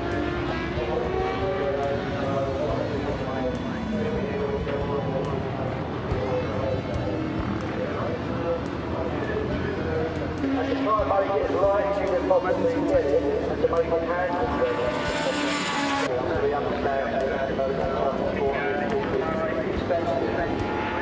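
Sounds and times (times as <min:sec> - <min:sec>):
racing motorcycle engines: 0:00.0 - 0:21.0.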